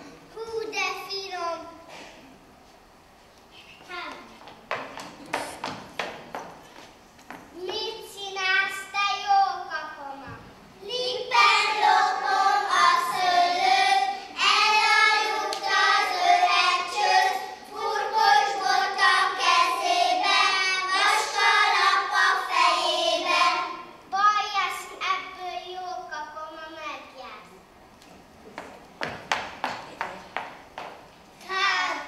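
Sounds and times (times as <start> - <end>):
children singing together: 10.8 - 24.0, 31.4 - 32.0.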